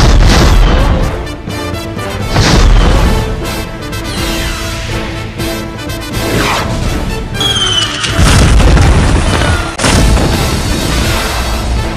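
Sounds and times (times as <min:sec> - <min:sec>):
music: 0:00.0 - 0:11.9.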